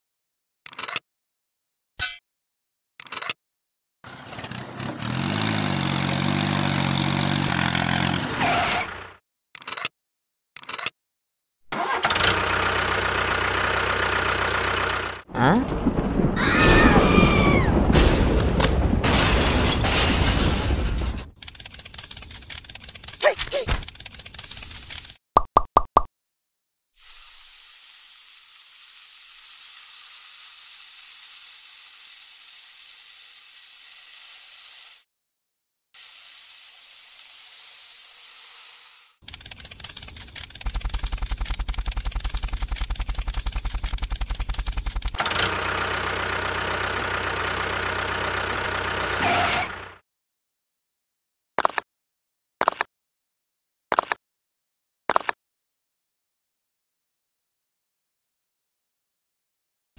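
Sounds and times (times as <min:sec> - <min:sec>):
rapid clicks: 0:21.4 - 0:25.2, 0:39.2 - 0:45.2
trowel scraping sand: 0:21.4 - 0:25.2, 0:27.0 - 0:35.0, 0:36.0 - 0:45.0.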